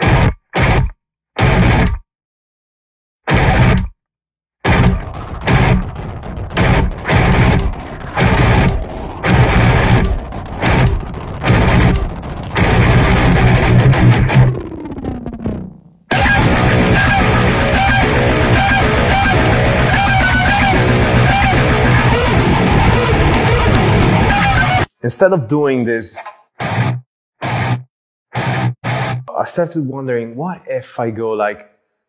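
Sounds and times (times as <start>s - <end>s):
distorted electric guitar riff: 0.0s - 2.0s, 3.3s - 3.9s, 4.6s - 24.9s, 26.2s - 29.4s.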